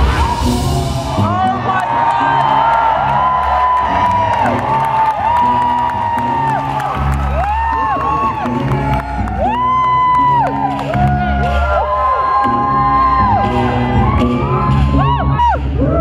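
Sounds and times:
live concert music over loudspeakers: 0.0s - 16.0s.

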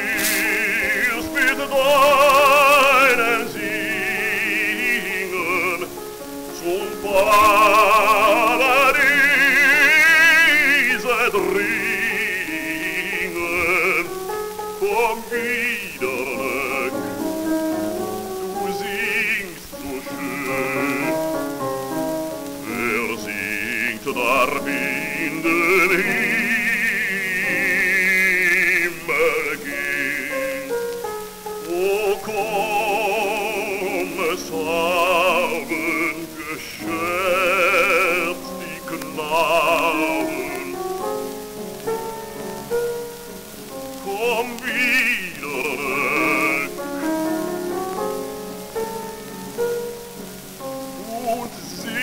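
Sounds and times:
baritone singing with vibrato: 0.0s - 52.0s
piano accompaniment: 0.0s - 52.0s
record surface hiss: 0.0s - 52.0s.

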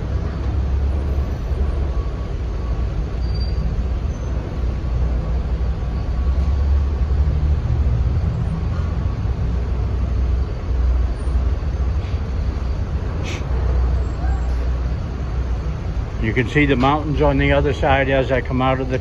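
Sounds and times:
traffic rumbling in a tunnel: 0.0s - 19.0s.

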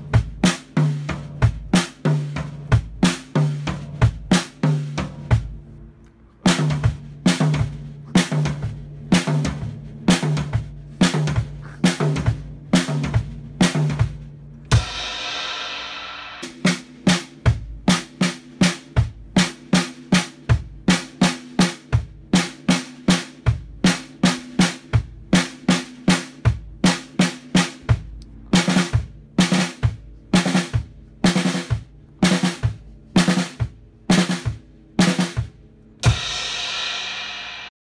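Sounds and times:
drum kit beat: 0.0s - 5.8s, 6.4s - 37.7s
cymbal crash: 14.8s - 16.6s, 36.0s - 37.7s.

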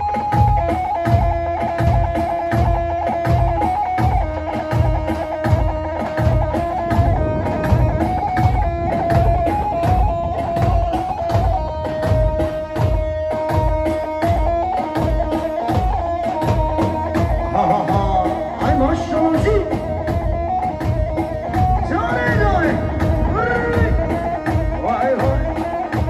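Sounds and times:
electric lute dance melody: 0.0s - 26.0s
steady drum beat: 0.0s - 26.0s.

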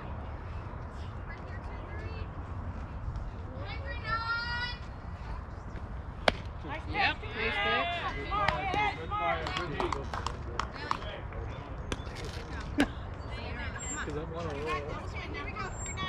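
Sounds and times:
voices calling out: 6.3s - 16.0s.

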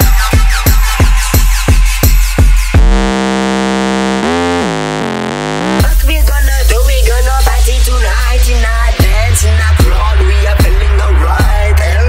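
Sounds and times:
buzzy synthesizer note bending: 2.6s - 6.0s.

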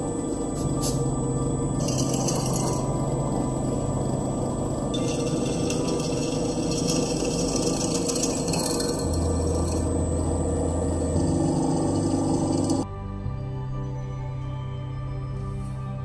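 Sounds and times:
drill bit grinding through metal: 0.0s - 12.8s
soft ambient music: 0.0s - 16.0s.

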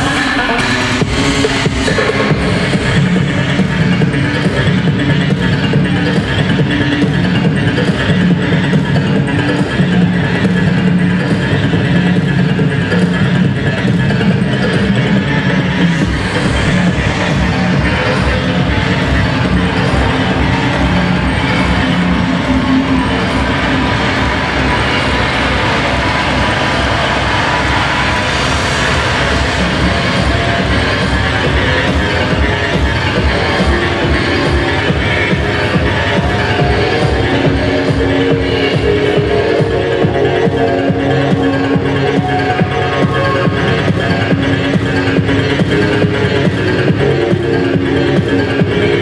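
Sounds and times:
electronic breakbeat music: 0.0s - 49.0s.

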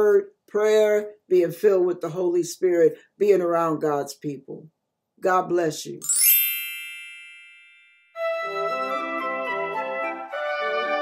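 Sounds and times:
bright chime ding: 6.0s - 8.2s.

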